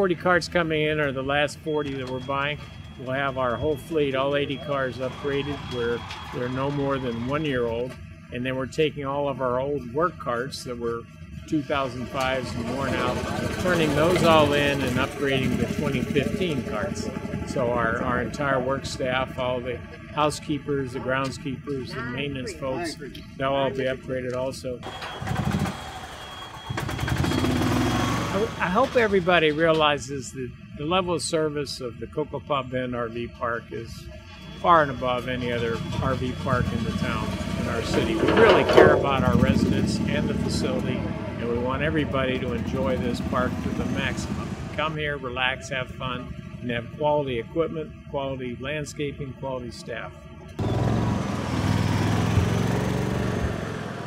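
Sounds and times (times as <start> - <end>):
golf cart engine hum: 0.0 - 54.0
low bumps: 34.4 - 47.1.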